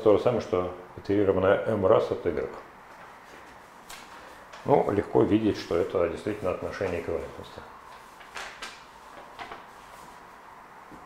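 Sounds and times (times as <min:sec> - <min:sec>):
paper rustling: 0:02.9 - 0:10.4.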